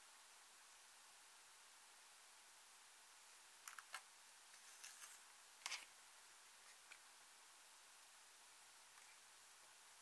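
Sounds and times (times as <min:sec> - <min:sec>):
soft crackling scrapes: 0:04.5 - 0:05.9.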